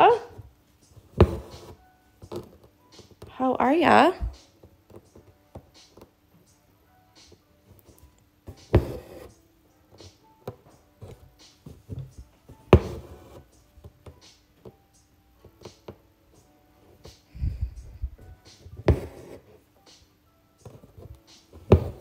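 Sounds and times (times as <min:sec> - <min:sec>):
faint background music: 0:00.0 - 0:22.0.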